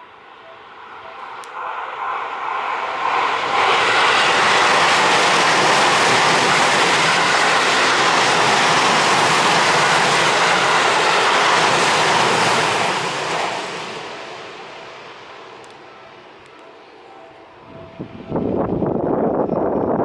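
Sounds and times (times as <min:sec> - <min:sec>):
train passing at speed: 0:00.0 - 0:20.0.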